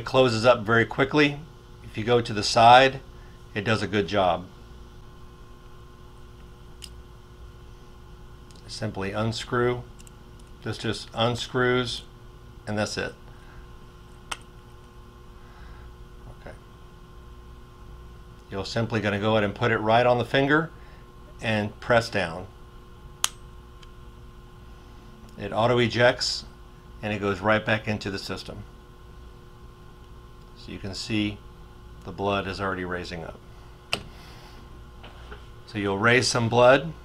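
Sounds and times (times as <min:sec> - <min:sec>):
faint electrical hum: 0:00.0 - 0:37.0
lancet firing click: 0:23.2 - 0:23.4.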